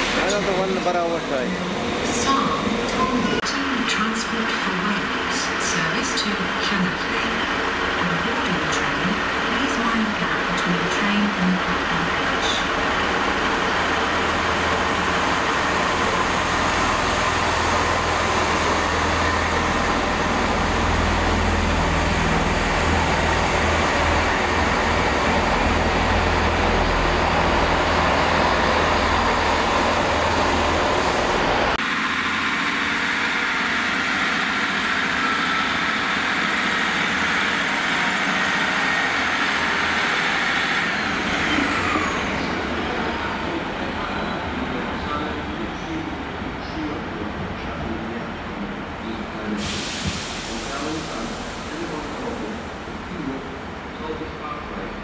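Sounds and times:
diesel train engine drone: 0.0 - 55.0
distant diesel train: 0.0 - 55.0
train wheels rumbling on rails: 0.0 - 55.0.

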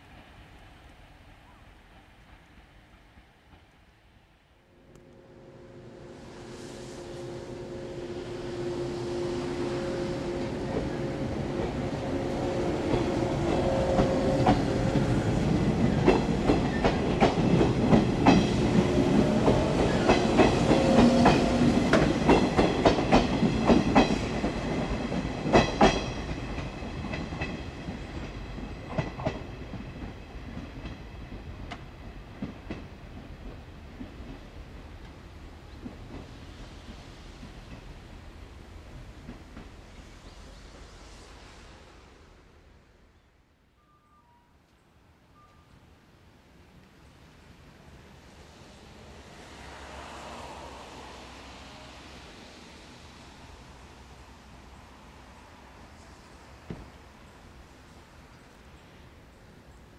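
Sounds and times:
electric train passing: 0.0 - 59.9.

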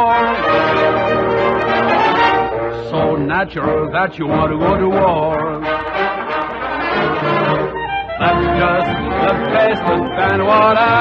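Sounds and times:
brass section playing: 0.0 - 11.0
person singing: 8.2 - 11.0.

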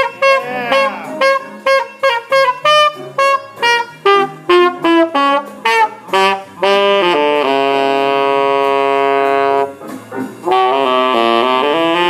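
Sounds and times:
saxophone long note: 0.0 - 9.7, 10.5 - 12.0.

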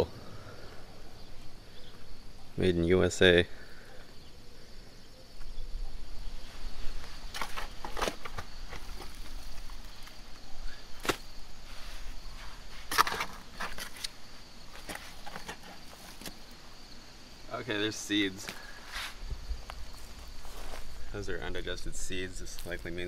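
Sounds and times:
insects droning: 0.0 - 23.0
shovel scraping into soil: 6.9 - 16.4, 18.9 - 19.2.

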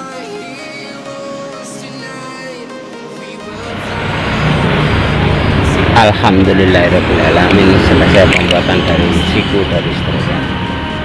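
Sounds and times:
low rumbling background noise: 3.6 - 11.0.

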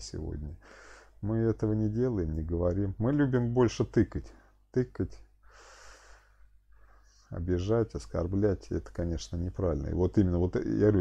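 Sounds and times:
man speaking: 0.0 - 0.6, 1.2 - 5.3, 7.3 - 11.0
man breathing in: 0.6 - 1.2, 5.4 - 7.2.

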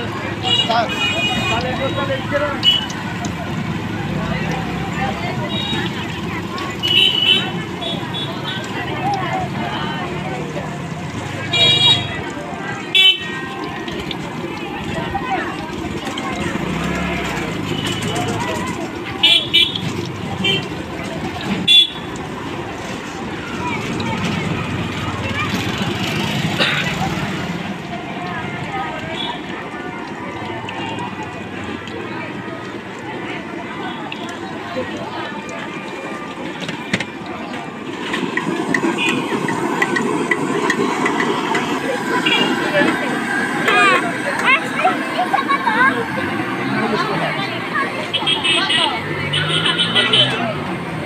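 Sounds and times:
eggs crackling in hot oil: 0.0 - 43.6
traffic: 0.0 - 51.0
voices: 0.0 - 51.0
vehicle horn toots: 6.8 - 8.6, 11.5 - 12.2, 21.7 - 22.1, 48.1 - 50.4.

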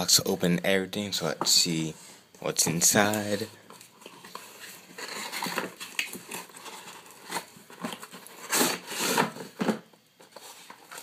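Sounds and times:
cardboard and packaging rustling: 2.6 - 11.0.

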